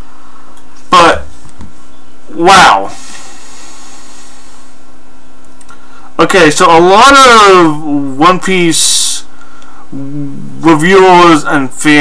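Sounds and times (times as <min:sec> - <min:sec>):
background hiss: 0:00.0 - 0:12.0
low hum: 0:09.0 - 0:11.1.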